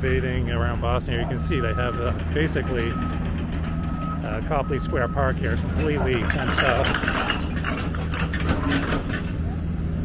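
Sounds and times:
machinery engine droning: 0.0 - 10.0
bricks clattering: 5.8 - 9.4.

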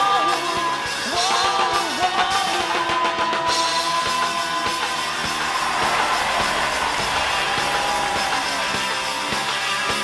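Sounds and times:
drums keeping a steady beat: 0.0 - 10.0
live rock band playing: 0.0 - 10.0.

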